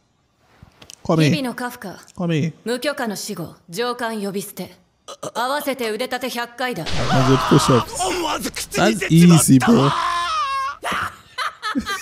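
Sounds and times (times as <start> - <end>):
anime dialogue: 1.1 - 10.4
man laughing: 9.6 - 12.0.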